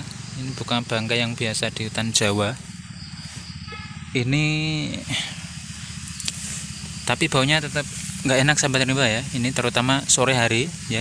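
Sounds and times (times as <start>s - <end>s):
high steady hiss: 0.0s - 11.0s
low pulsing hum: 0.0s - 11.0s.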